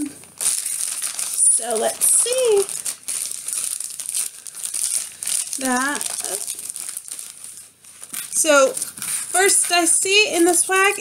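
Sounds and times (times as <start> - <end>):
packaging crinkling: 0.0 - 11.0.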